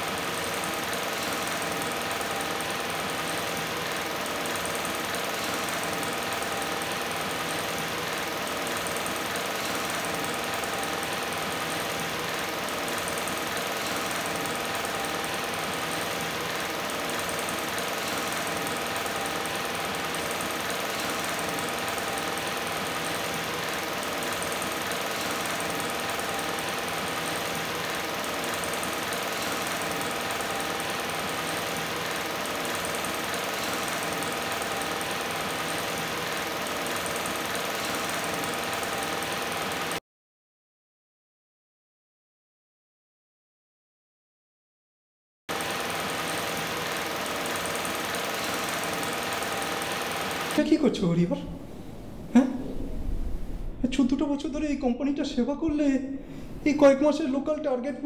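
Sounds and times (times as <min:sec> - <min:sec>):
electric fan humming: 0:00.0 - 0:40.0, 0:45.5 - 0:57.6.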